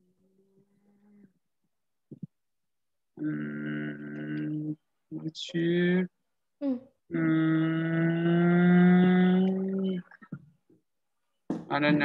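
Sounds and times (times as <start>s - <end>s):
person humming: 3.2s - 4.8s, 6.6s - 10.1s
short vocal sound: 3.2s - 5.2s, 6.6s - 10.5s.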